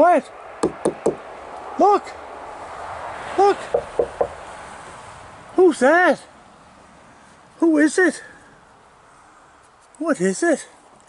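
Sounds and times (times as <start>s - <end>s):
knocks on wood: 0.6s - 1.2s, 3.7s - 4.4s.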